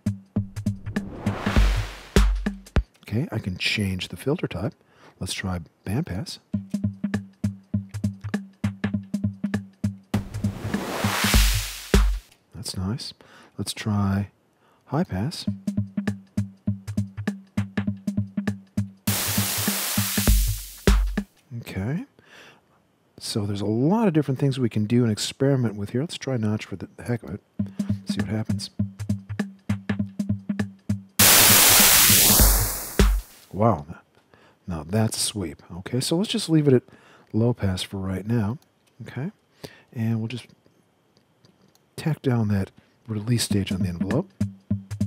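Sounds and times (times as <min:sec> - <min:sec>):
electronic drum machine beat: 0:00.0 - 0:02.8, 0:06.6 - 0:12.3, 0:15.5 - 0:21.3, 0:27.6 - 0:33.4, 0:43.5 - 0:45.0
synthesized white-noise whoosh: 0:00.8 - 0:02.2, 0:10.2 - 0:12.3, 0:19.1 - 0:20.8, 0:31.2 - 0:33.6.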